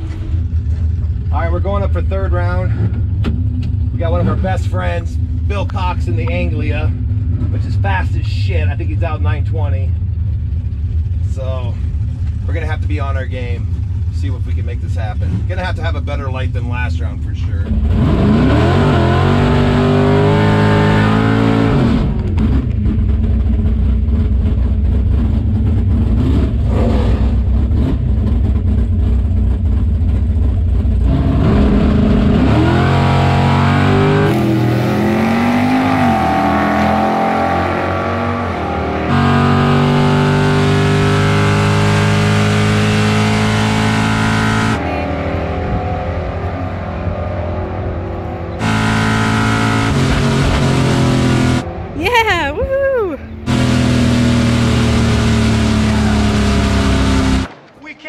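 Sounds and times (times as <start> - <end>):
race car engine revving: 11.4 - 52.0, 53.3 - 57.7.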